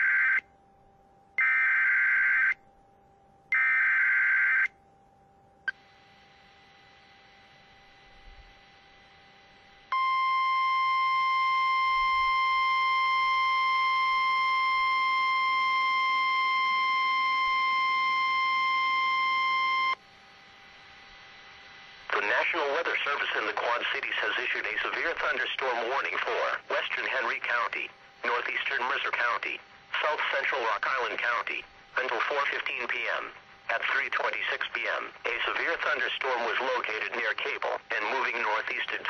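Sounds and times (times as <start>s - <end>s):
steady alarm tone: 0.0s - 23.4s
person reading over broadcast: 22.1s - 39.0s.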